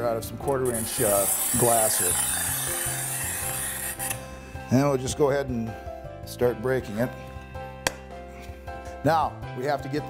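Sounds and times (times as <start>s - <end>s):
background music with sustained tones: 0.0s - 10.0s.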